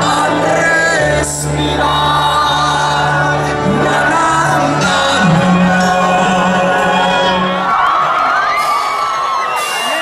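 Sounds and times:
crowd cheering and whooping: 0:03.9 - 0:10.0.

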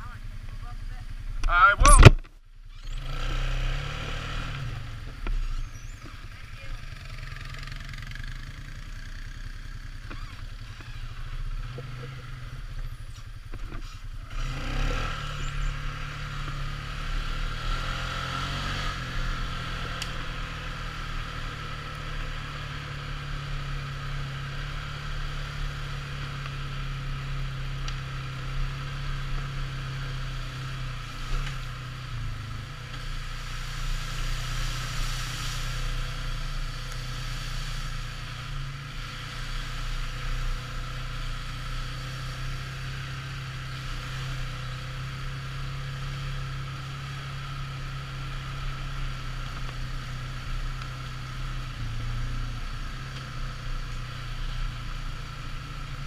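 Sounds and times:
quad bike engine: 0:00.0 - 0:56.0.

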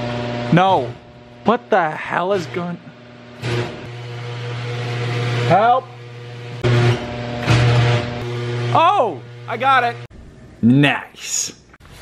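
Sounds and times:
garage door motor humming: 0:00.0 - 0:10.1
garage door opener clunk: 0:06.0 - 0:08.3.

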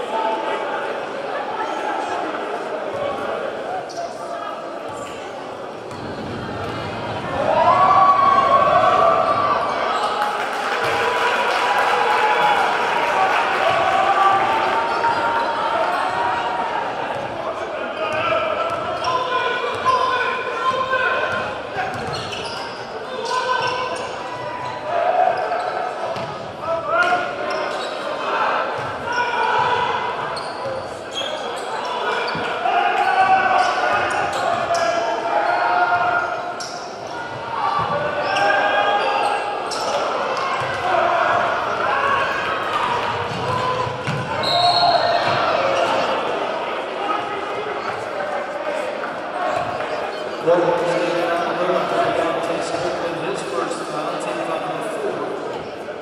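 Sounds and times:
spectators chattering: 0:00.0 - 0:56.0.

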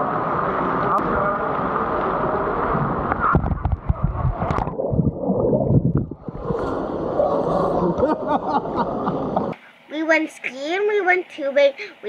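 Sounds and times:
muffled bubbly underwater sound: 0:02.1 - 0:08.0.

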